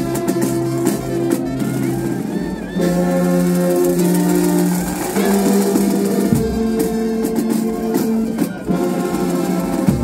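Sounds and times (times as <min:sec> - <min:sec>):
brass band playing held chords: 0:00.0 - 0:10.0.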